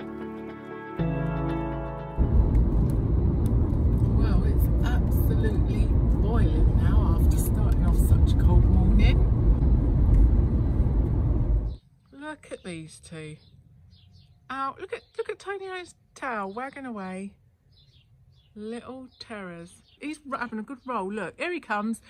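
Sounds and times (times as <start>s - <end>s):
car road and engine noise: 1.2s - 11.8s.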